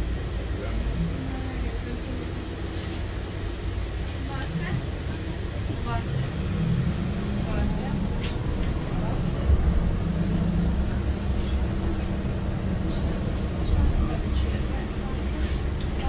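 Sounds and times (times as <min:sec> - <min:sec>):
bus driving rumble: 0:00.0 - 0:16.0.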